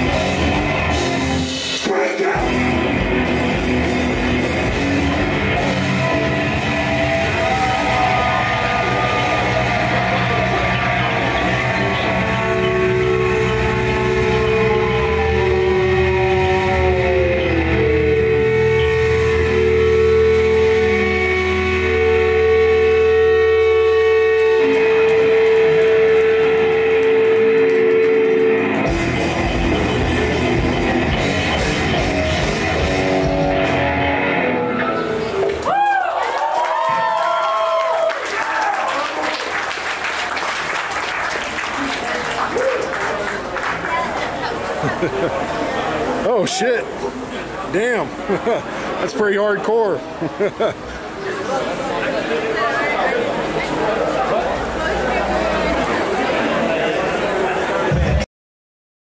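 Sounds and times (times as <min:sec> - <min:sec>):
distorted electric guitars: 0:00.0 - 0:35.8, 0:43.3 - 0:58.2
bass guitar: 0:00.0 - 0:36.0, 0:50.0 - 0:58.3
drums: 0:00.0 - 0:38.6, 0:57.2 - 0:58.3.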